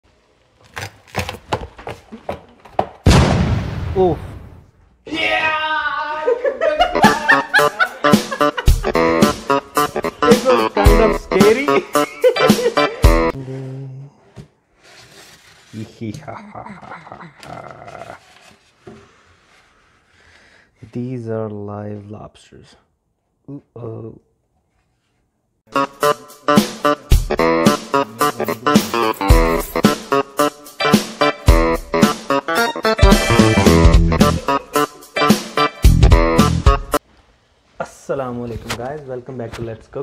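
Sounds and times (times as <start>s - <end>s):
loud boom: 3.1s - 4.7s
excited voices exclaiming: 5.1s - 7.4s
laughter: 6.2s - 8.8s, 11.8s - 13.1s, 16.2s - 18.2s.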